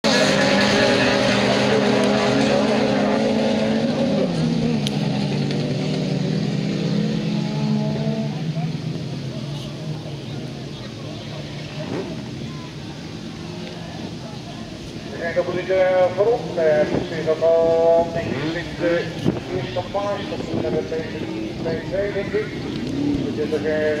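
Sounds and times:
racing car engines at high revs: 0:00.0 - 0:12.6, 0:14.8 - 0:24.0.

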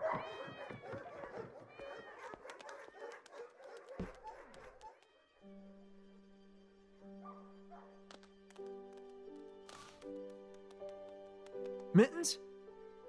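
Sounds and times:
light clicks: 0:08.1 - 0:11.9.

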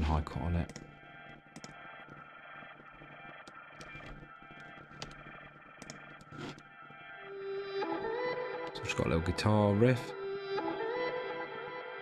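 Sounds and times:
ambient drone: 0:00.8 - 0:08.7
soft mouse clicks: 0:01.6 - 0:01.8, 0:03.4 - 0:06.6.

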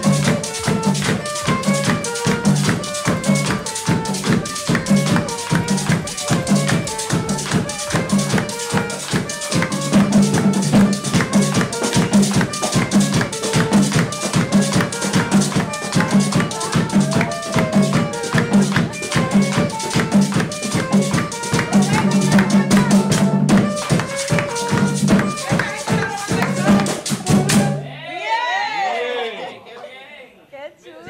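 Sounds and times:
metal scraper rhythm: 0:00.0 - 0:22.7
bass drum beaten with stick: 0:00.0 - 0:27.8
hand drum: 0:00.0 - 0:27.9.

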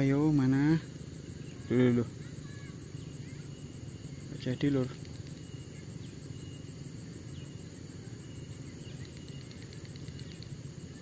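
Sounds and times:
faint high chirps: 0:00.0 - 0:11.0.

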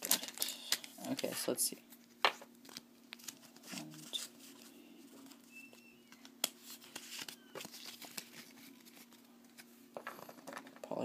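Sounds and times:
cards rustling and clicking: 0:00.0 - 0:10.8
low steady hum: 0:00.0 - 0:11.0.

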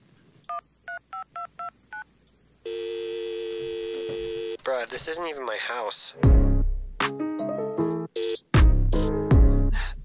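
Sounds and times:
telephone line tone: 0:02.6 - 0:04.6.

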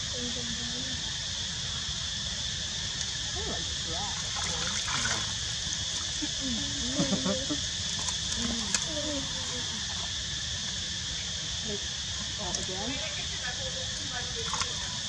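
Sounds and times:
high insect drone: 0:00.0 - 0:15.0
voices in background: 0:03.1 - 0:05.4, 0:06.1 - 0:15.0.

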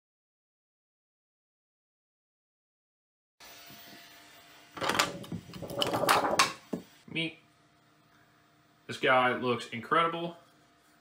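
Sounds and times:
metal plate scraping and clattering: 0:04.8 - 0:06.6.

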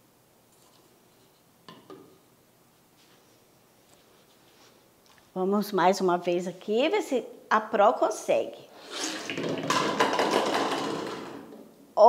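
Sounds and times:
toy pins knocking on wooden table: 0:09.6 - 0:11.3.

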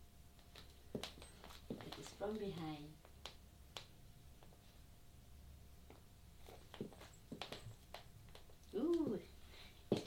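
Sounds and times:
stiletto heels on hard floor: 0:00.5 - 0:03.3, 0:06.4 - 0:09.1.

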